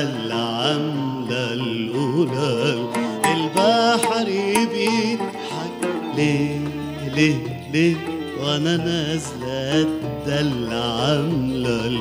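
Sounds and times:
man singing ornamented vocal line: 0.0s - 12.0s
oud playing: 0.0s - 12.0s.

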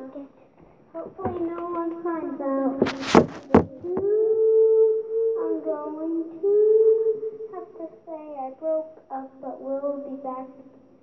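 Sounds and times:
child singing: 0.0s - 10.9s.

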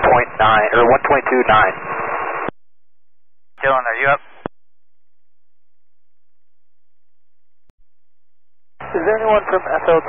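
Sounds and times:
man speaking over radio: 0.0s - 1.8s, 3.6s - 4.5s, 8.8s - 10.0s
radio static hiss: 0.0s - 2.5s, 3.6s - 4.5s, 8.8s - 10.0s.

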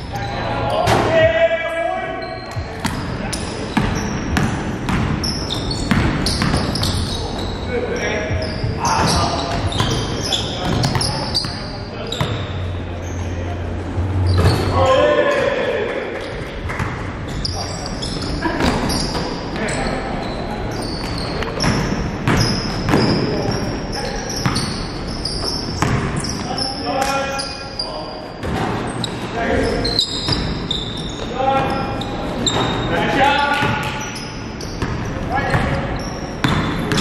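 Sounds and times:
sneaker squeaks: 2.0s - 37.0s
basketball bouncing: 3.8s - 7.0s, 21.5s - 23.6s, 25.8s - 26.2s, 36.4s - 37.0s
players calling out: 5.2s - 37.0s.

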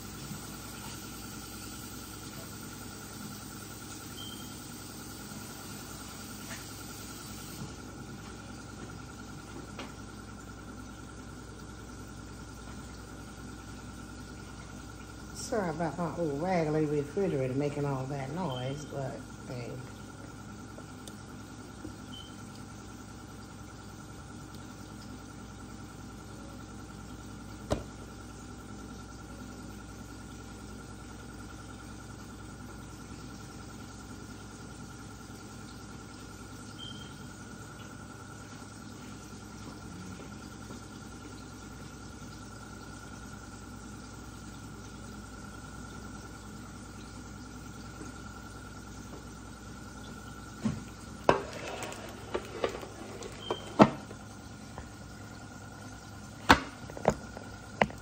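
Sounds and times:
refrigerator humming: 0.0s - 58.0s
faint high whine: 4.0s - 4.9s, 22.0s - 22.4s, 36.7s - 37.4s.

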